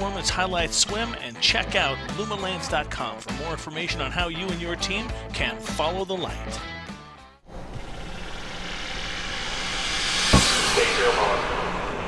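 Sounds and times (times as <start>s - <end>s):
impact hit: 7.5s - 12.0s
whoosh sound effect: 8.1s - 12.0s.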